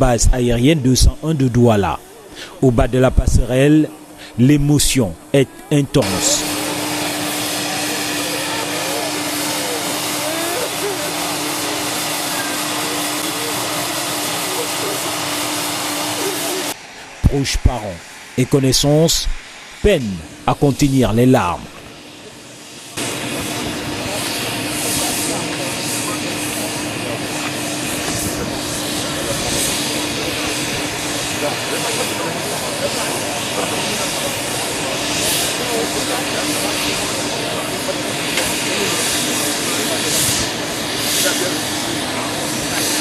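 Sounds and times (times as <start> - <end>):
aircraft engine noise: 0.0 - 43.0.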